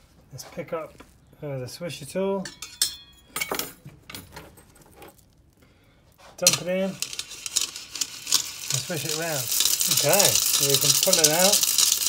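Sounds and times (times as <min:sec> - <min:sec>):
metallic clinks: 0:02.4 - 0:04.2, 0:06.4 - 0:12.0
bicycle chain jingling: 0:06.4 - 0:12.0.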